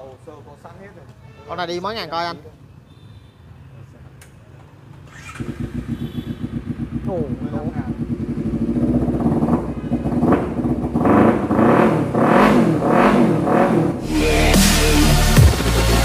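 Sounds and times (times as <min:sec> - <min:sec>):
motorcycle engine idling and revving: 0:04.8 - 0:14.1.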